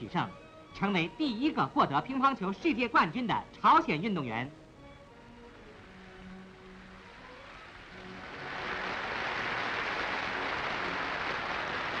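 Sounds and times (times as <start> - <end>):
faint music tones: 0.0 - 12.0
audience applause: 7.9 - 12.0.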